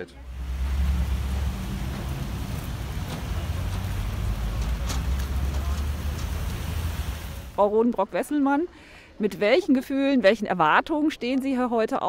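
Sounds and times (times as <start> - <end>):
traffic engines rumbling: 0.0 - 7.8
tyres hissing on wet road: 0.1 - 7.6.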